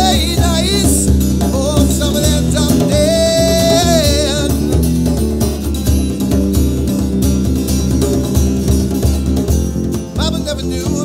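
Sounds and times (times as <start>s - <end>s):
person singing: 0.0s - 5.1s, 10.2s - 11.0s
acoustic guitar: 0.0s - 11.0s
djembe hand drum: 0.0s - 11.0s
electric bass: 0.0s - 11.0s.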